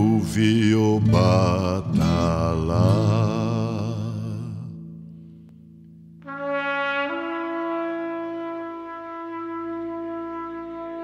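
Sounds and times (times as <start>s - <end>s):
chant-like singing voice: 0.0s - 4.8s.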